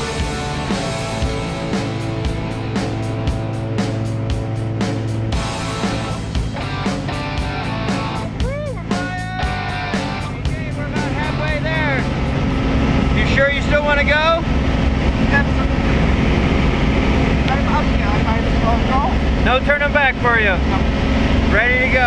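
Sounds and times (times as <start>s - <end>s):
background music: 0.0s - 18.7s
small plane engine drone: 0.0s - 22.0s
voices: 6.6s - 16.3s, 17.3s - 22.0s.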